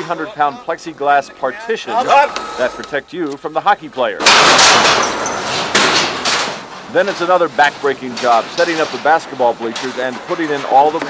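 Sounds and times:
bang: 0:04.2 - 0:07.2
heavy metal fittings clattering: 0:04.2 - 0:11.0.

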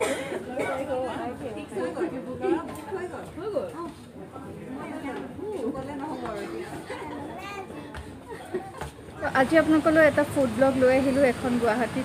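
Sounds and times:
diners chattering: 0:00.0 - 0:12.0.

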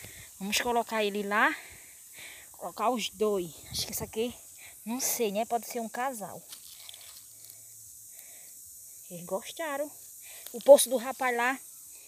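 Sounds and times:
high-pitched insect chirring: 0:00.0 - 0:12.0.

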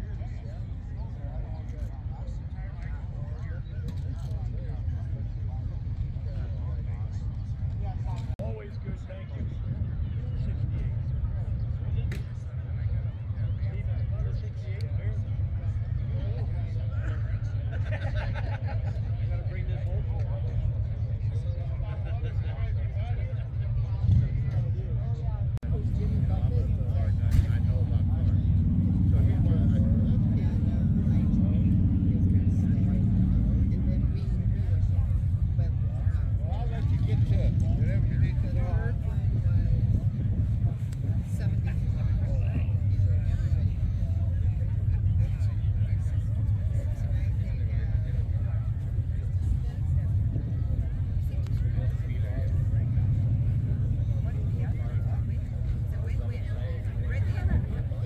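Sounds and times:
people talking in background: 0:00.0 - 0:58.0
vehicle engine idling: 0:25.2 - 0:58.0.

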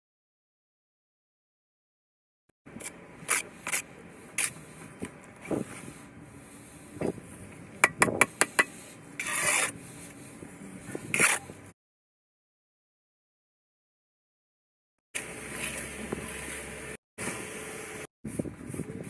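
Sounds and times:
trowel scraping mortar: 0:02.8 - 0:07.2, 0:07.9 - 0:11.8
trowel tapping bricks: 0:07.8 - 0:09.7.

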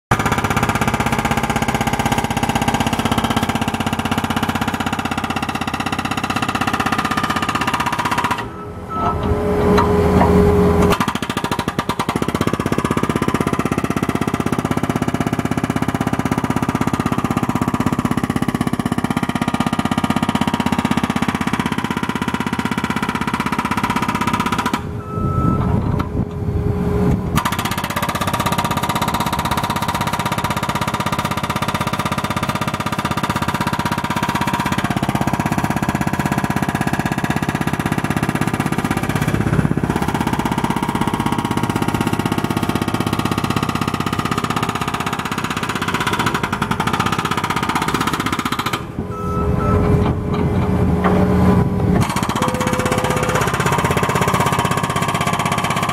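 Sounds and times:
hydraulic breaker hammer pounding asphalt: 0:00.1 - 0:25.0, 0:27.2 - 0:49.1, 0:49.7 - 0:55.9
diesel engine running: 0:00.1 - 0:55.9.

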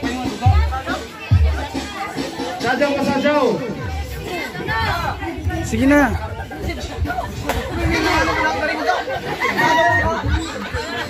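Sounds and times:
people chattering and calling out: 0:00.0 - 0:11.0.

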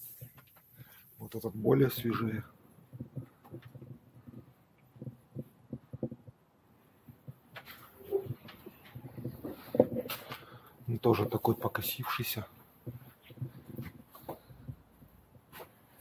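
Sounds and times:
knocks and shuffling: 0:00.0 - 0:16.0.

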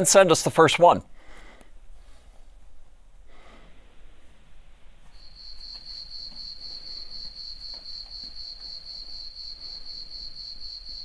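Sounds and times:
crickets chirping: 0:05.1 - 0:11.0.

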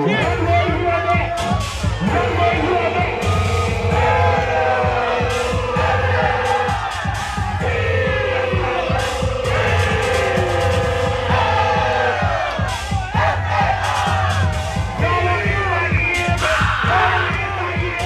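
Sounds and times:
dance track with heavy bass: 0:00.0 - 0:18.0.

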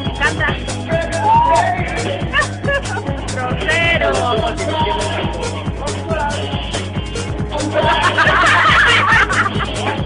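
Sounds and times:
dance music with steady beat: 0:00.0 - 0:10.0
people laughing loudly: 0:02.1 - 0:03.4, 0:07.5 - 0:10.0.

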